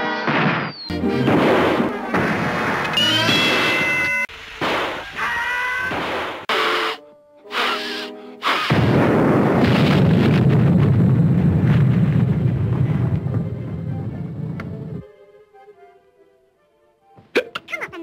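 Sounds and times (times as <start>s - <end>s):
cartoon hits and stings: 0.2s - 5.1s, 5.8s - 9.9s
cartoon explosion with rumble: 0.3s - 3.9s, 8.5s - 14.5s.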